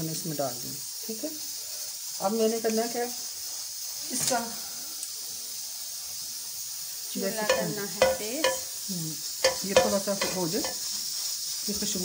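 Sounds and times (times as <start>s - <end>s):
ghee sizzling in a pan: 0.0s - 12.0s
person speaking: 7.4s - 8.6s, 9.5s - 10.8s.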